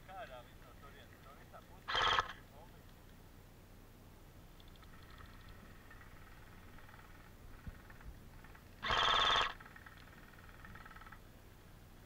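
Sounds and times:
airsoft gun burst: 0:01.9 - 0:02.4, 0:08.8 - 0:09.6.

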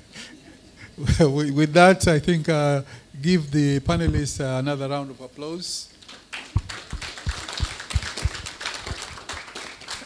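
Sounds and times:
audience applauding: 0:06.3 - 0:10.0.

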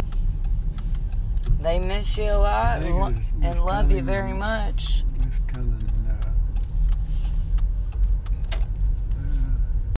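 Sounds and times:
road and engine rumble: 0:00.0 - 0:10.0
sharp clicks: 0:04.4 - 0:09.6.

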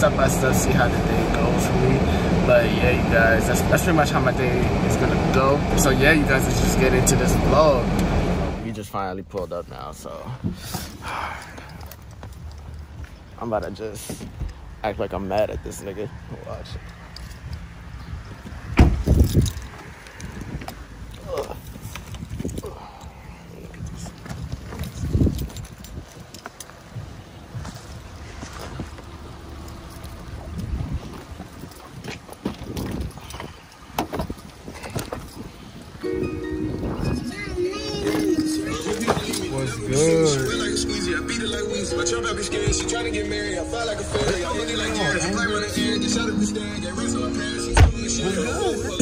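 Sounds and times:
wind buffeting microphone: 0:16.6 - 0:39.3.

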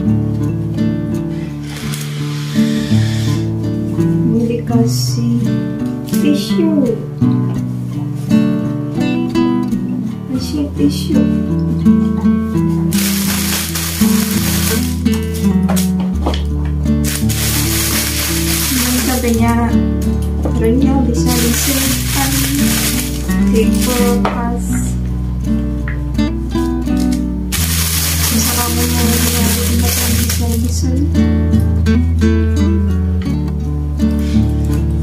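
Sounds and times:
background music with low notes: 0:00.0 - 0:35.0
plastic bag rustling: 0:01.4 - 0:03.3, 0:12.9 - 0:16.2, 0:17.0 - 0:19.8, 0:21.1 - 0:24.6, 0:27.0 - 0:30.9.

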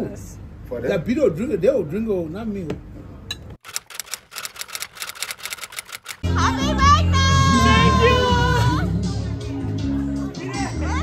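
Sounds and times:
typewriter key clicks: 0:03.7 - 0:06.2.

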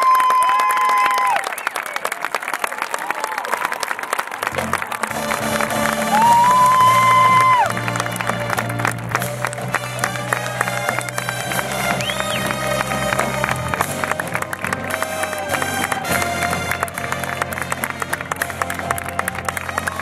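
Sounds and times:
crowd applauding and cheering: 0:00.0 - 0:20.0
drums: 0:04.5 - 0:20.0
marching band brass chords: 0:04.5 - 0:20.0.

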